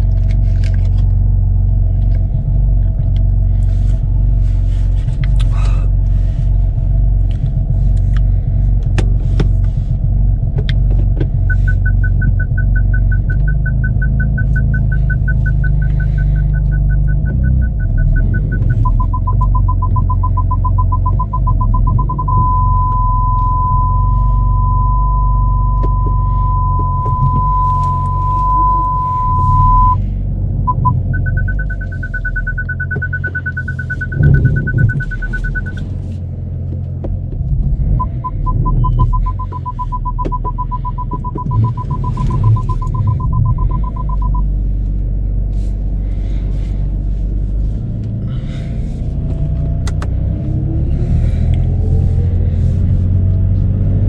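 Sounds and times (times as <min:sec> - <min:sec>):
engine rumble: 0:00.0 - 0:54.0
continuous warning tone: 0:11.4 - 0:30.0, 0:30.6 - 0:35.9, 0:38.0 - 0:44.6
parking sensor beeps: 0:11.4 - 0:30.0, 0:30.6 - 0:35.8, 0:38.0 - 0:44.5.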